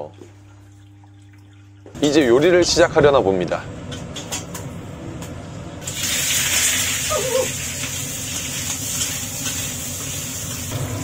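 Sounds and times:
meat sizzling in hot oil: 5.8 - 11.0.

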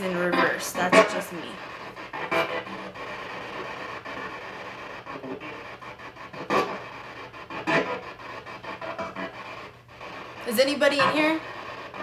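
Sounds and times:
radio static bursts: 0.0 - 12.0.

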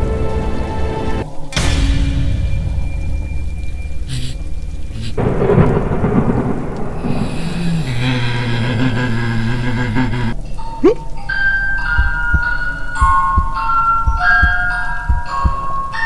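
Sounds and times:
rain: 0.0 - 16.0
thunder rumbling: 1.3 - 10.4.

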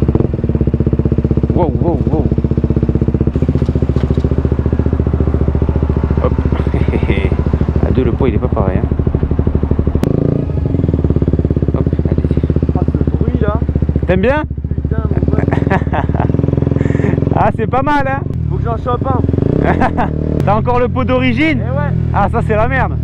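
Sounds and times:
motorcycle engine running loud: 0.0 - 23.0.

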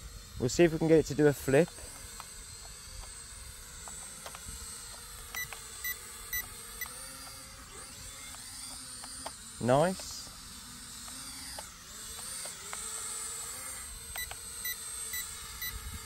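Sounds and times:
toy drone propellers whining: 0.0 - 16.0.

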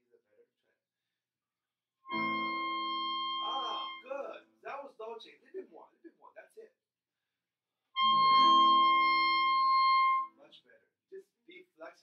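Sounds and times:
clarinet holding high note: 2.1 - 4.1, 8.0 - 10.3
person talking: 3.4 - 6.7.

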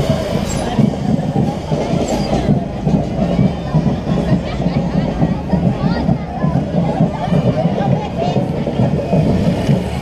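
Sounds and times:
marching band drums and brass: 0.0 - 10.0.

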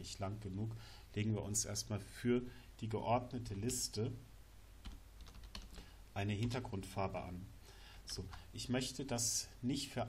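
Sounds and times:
keyboard typing: 4.8 - 6.6.

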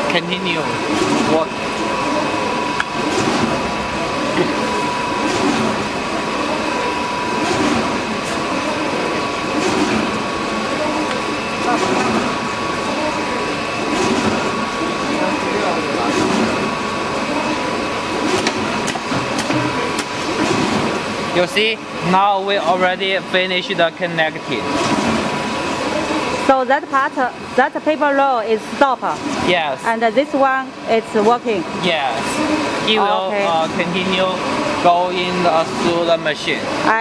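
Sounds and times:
machine humming with high whine: 0.0 - 37.0.

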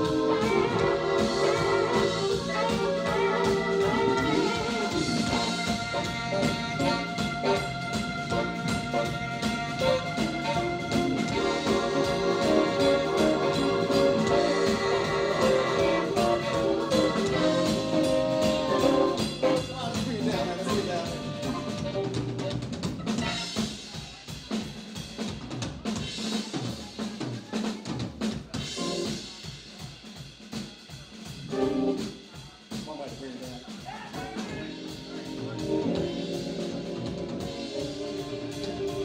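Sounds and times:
electric guitar: 0.0 - 19.6, 34.4 - 39.0
saxophones holding notes: 0.0 - 23.6
keyboard: 0.0 - 24.4, 28.5 - 29.6, 31.4 - 32.4, 34.1 - 39.0
drum kit hits: 0.0 - 26.5
live band playing: 0.0 - 39.0.

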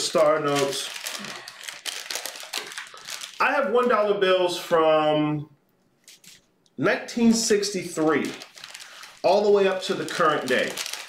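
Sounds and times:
paper rustling and crinkling: 0.0 - 3.4, 7.9 - 11.0.

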